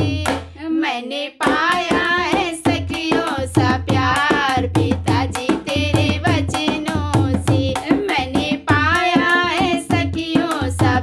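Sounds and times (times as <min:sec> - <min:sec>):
hand drum beat: 0:00.0 - 0:00.6, 0:01.4 - 0:11.0
woman singing folk song: 0:00.0 - 0:11.0.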